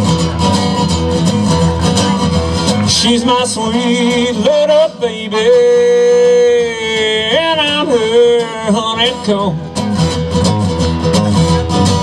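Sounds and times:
strummed acoustic guitar: 0:00.0 - 0:12.0
man singing: 0:02.2 - 0:10.0.

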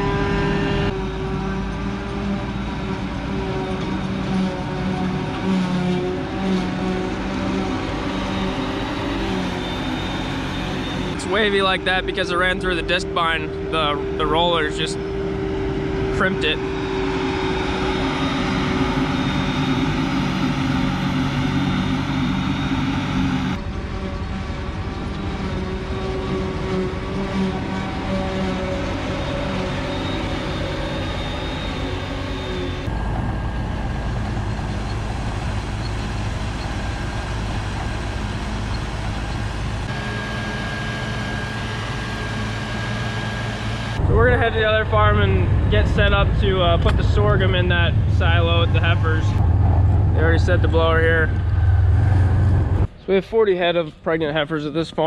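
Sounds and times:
diesel engines running under load: 0:00.0 - 0:55.0.

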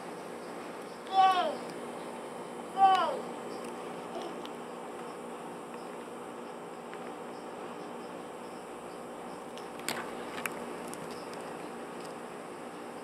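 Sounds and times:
insects chirping: 0:00.0 - 0:13.0
low steady hum: 0:00.0 - 0:13.0.

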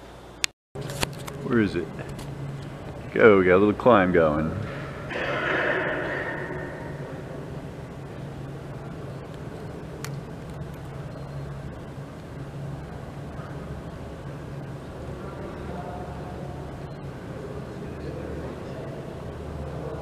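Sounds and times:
low hum: 0:04.2 - 0:15.1.

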